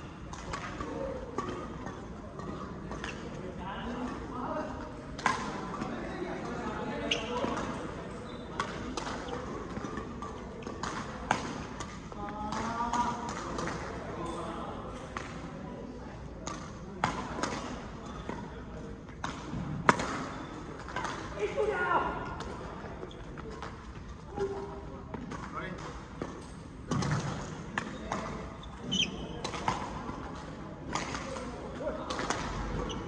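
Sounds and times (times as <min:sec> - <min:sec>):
rackets hitting shuttlecock: 0:08.6 - 0:13.9, 0:24.4 - 0:33.0.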